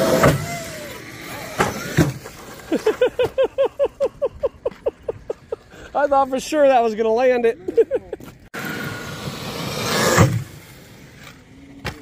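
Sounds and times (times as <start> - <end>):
rc truck running on gravel: 0.0 - 3.2, 8.3 - 12.0.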